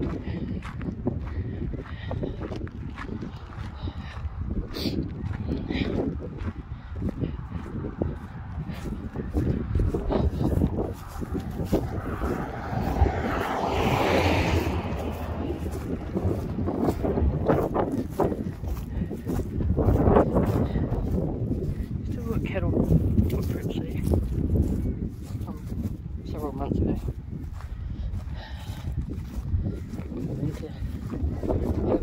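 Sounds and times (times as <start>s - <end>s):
footsteps on dry grass: 0.0s - 32.0s
wind buffeting microphone: 0.0s - 32.0s
car passing: 7.4s - 22.0s.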